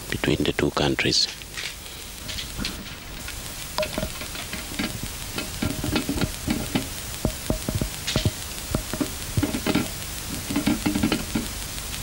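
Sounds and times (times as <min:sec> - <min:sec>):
noisy background: 0:00.0 - 0:12.0
sharp clicks and crackles: 0:01.2 - 0:12.0.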